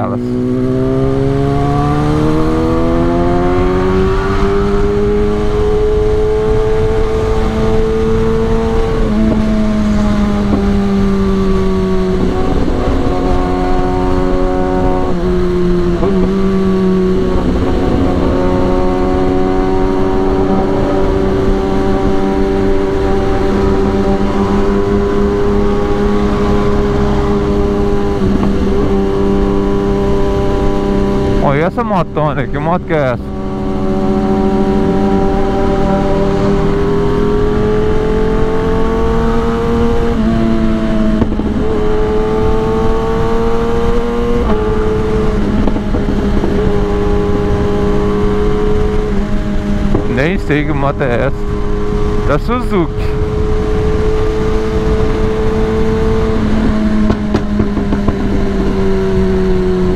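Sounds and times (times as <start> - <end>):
motorcycle engine: 0.0 - 59.9
wind rush: 40.1 - 59.9.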